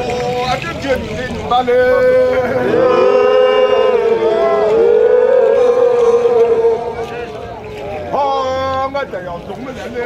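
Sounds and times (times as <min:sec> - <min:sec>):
horn held notes: 0:02.6 - 0:07.2.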